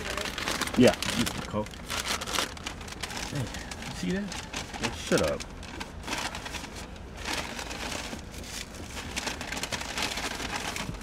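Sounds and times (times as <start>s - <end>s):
paper bag rustling: 0.0s - 11.0s.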